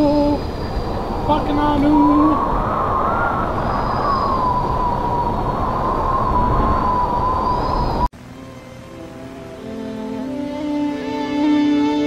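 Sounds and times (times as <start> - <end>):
loud rushing portal noise: 0.0 - 8.1
thin wavering whine: 0.0 - 12.0.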